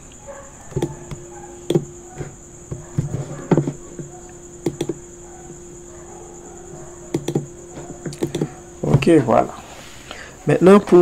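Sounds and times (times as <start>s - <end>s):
high-pitched electrical whine: 0.0s - 11.0s
computer mouse clicking: 0.7s - 5.0s, 7.1s - 9.0s.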